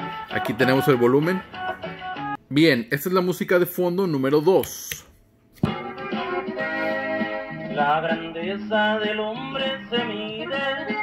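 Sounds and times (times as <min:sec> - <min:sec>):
background music held notes: 0:00.0 - 0:02.4, 0:05.6 - 0:11.0.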